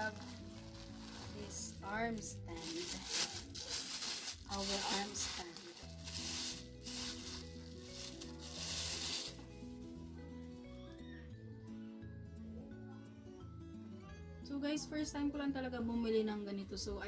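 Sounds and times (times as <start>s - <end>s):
plastic bag rustling: 0.0s - 9.8s
soft background music: 0.0s - 17.0s.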